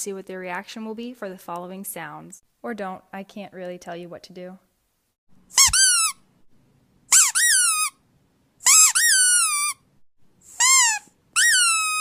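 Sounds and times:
high-pitched sliding squeaks: 5.6 - 6.2, 8.7 - 9.8, 10.5 - 12.0.

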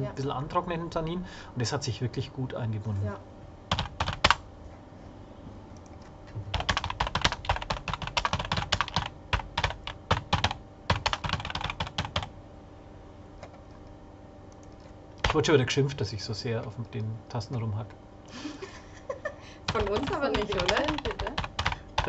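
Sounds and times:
fast keyboard typing: 3.7 - 4.4, 6.5 - 12.3, 14.6 - 15.5, 19.7 - 22.0.

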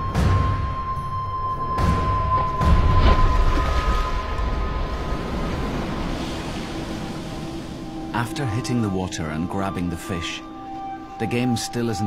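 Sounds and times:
soft sustained music notes: 0.0 - 12.0
water splashing and churning: 1.7 - 11.1.

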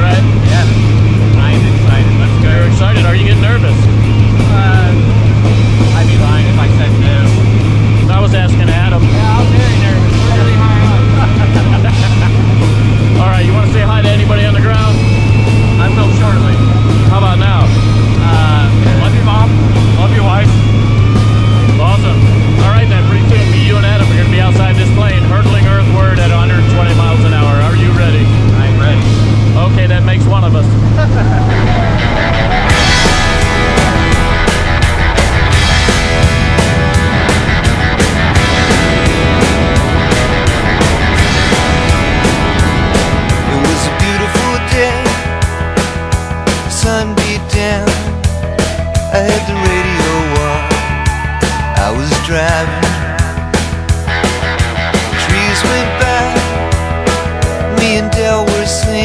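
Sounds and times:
plane engine and propeller drone: 0.0 - 59.0
voices: 0.0 - 59.0.

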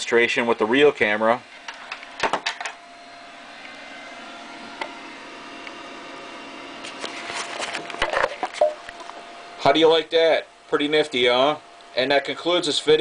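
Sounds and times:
faint room hum: 0.0 - 13.0.

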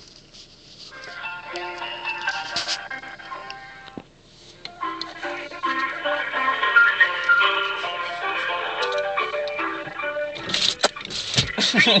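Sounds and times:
hold music through phone speaker: 0.8 - 12.0.

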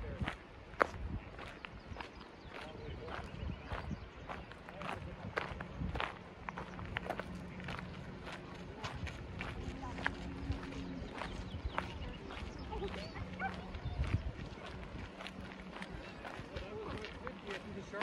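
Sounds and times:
footsteps: 2.5 - 18.0.

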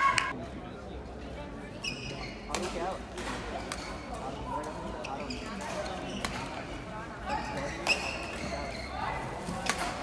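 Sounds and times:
people talking in a hall: 0.0 - 10.0.

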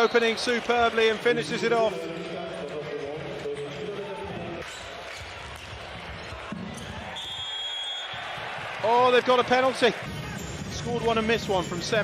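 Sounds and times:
arena crowd noise: 0.0 - 12.0
referee's whistle: 7.1 - 8.2.

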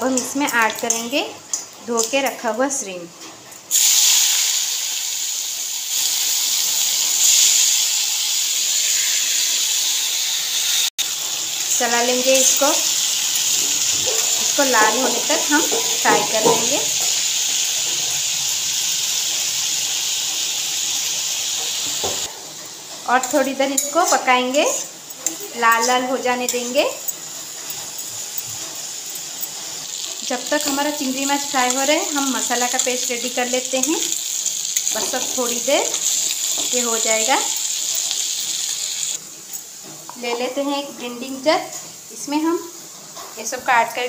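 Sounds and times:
shrimp sizzling in hot oil: 3.7 - 44.0.

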